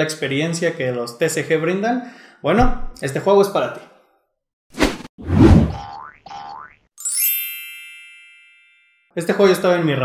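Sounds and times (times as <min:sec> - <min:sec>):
bright chime ringing: 0:07.0 - 0:09.1.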